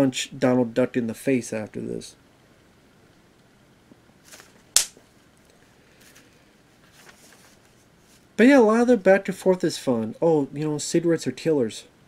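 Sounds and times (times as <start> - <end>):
sharp click: 4.8 - 5.0.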